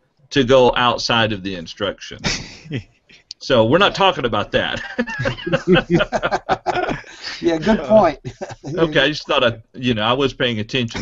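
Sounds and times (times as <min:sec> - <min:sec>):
men chuckling: 0:02.2 - 0:02.8, 0:03.7 - 0:09.5.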